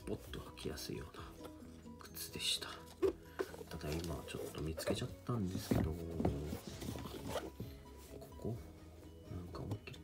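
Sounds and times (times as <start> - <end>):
background music: 0.0 - 10.0
sneaker fabric rustling: 3.0 - 8.3.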